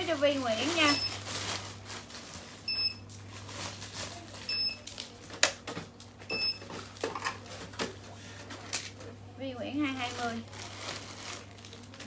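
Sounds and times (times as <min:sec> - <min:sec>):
plastic bags crackling: 0:00.0 - 0:07.8, 0:09.7 - 0:12.0.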